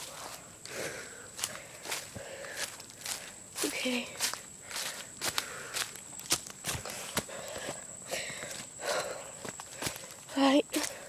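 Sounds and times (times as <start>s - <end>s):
footsteps crunching dry leaves: 0.0s - 7.9s, 8.5s - 11.0s.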